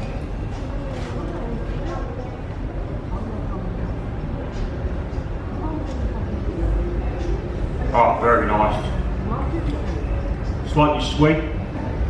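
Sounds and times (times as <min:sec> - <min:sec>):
faint voices: 0:00.0 - 0:12.0
low rumble of room noise: 0:00.0 - 0:12.0.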